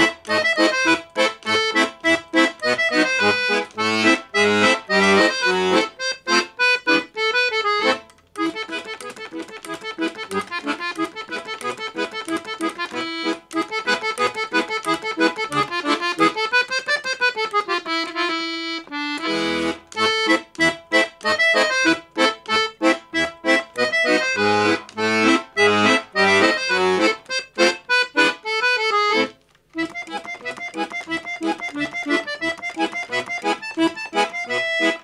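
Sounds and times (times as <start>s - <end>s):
piano accordion playing: 0.0s - 35.0s.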